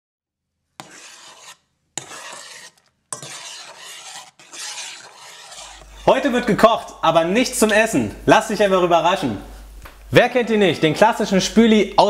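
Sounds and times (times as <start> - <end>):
rasping scraping noise: 0.8 - 6.5.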